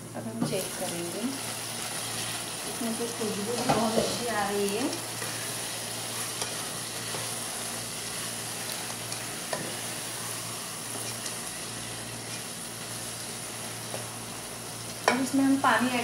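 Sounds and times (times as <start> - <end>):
food sizzling in a pot: 0.0 - 16.0.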